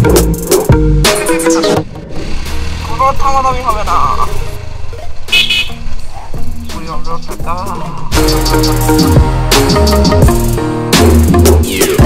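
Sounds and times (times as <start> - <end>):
high-pitched horn toot: 5.3 - 5.8.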